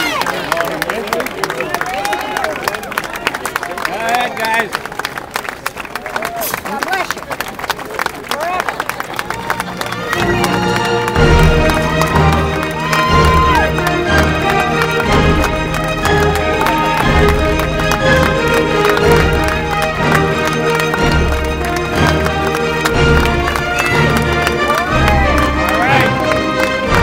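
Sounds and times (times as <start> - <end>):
crowd calling out and talking: 0.0 - 27.0
crowd clapping: 0.0 - 27.0
music with heavy low notes: 10.2 - 27.0.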